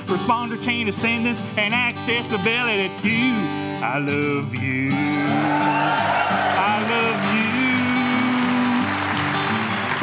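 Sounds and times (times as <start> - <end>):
acoustic guitar playing: 0.0 - 10.0
person singing: 6.5 - 9.1.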